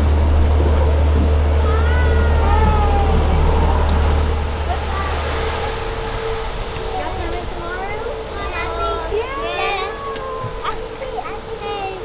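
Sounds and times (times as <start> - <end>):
bus engine idling: 0.0 - 12.0
faint higher hum: 0.0 - 12.0.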